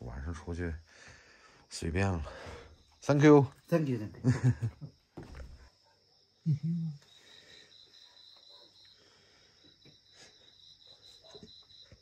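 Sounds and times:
night insects chirping: 0.0s - 12.0s.

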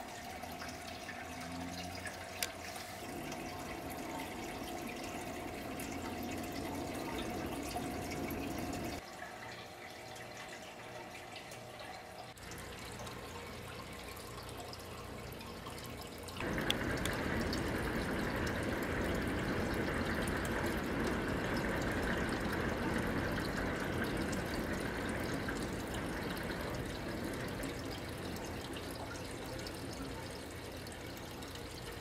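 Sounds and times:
trickling running water: 0.0s - 32.0s.

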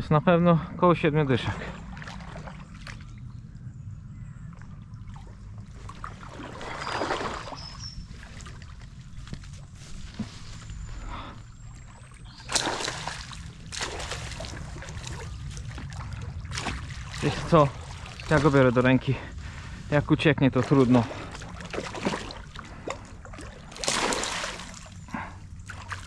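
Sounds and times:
low rumble: 0.0s - 26.0s
water splashing in shallows: 1.4s - 3.3s, 4.5s - 26.0s.

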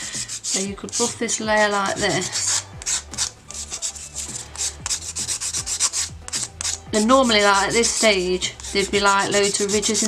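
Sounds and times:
nail buffer scratching: 0.0s - 10.0s.

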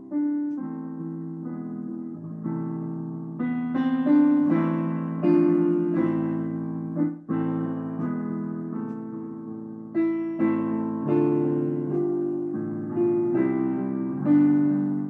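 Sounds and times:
digital piano chords: 0.0s - 15.0s.

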